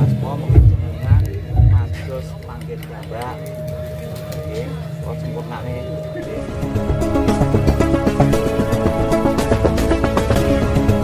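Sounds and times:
steady high tone: 0:01.0 - 0:10.1.

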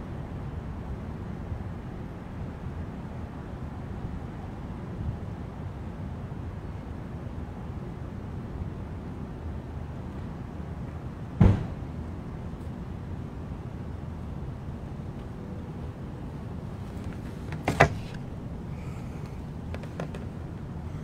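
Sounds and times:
outdoor street background noise: 0:00.0 - 0:21.0
heavy thump: 0:11.4 - 0:11.8.

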